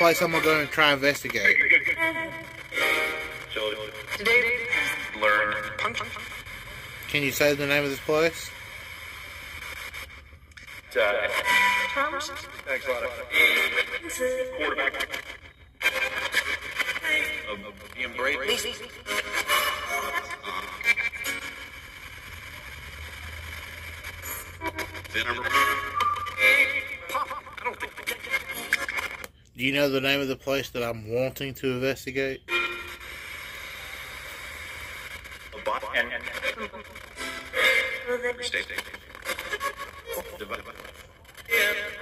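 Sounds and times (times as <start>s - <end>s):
broken radio sound scraps: 0.0s - 42.0s
choppy rasping radio static: 0.0s - 42.0s.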